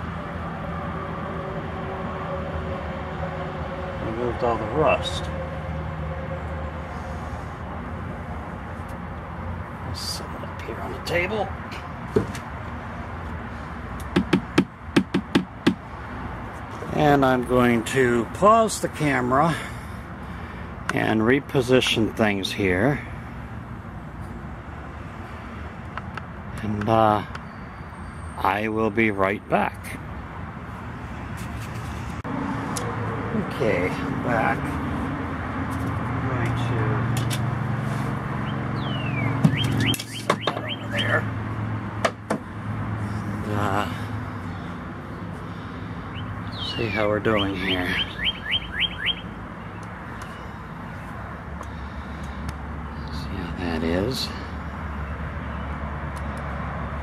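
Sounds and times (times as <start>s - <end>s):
sharp knocks: 14.1s - 15.8s, 42.0s - 42.5s
small bird calling: 38.4s - 41.3s, 45.5s - 50.7s
bird whistle: 38.8s - 41.2s, 46.1s - 49.3s.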